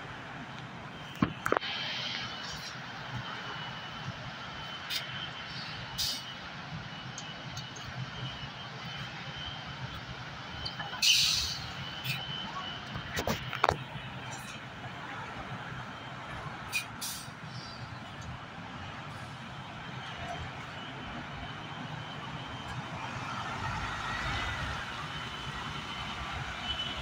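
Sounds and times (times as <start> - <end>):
bus diesel engine running: 0.0 - 27.0
compressed-air hiss: 16.7 - 17.3.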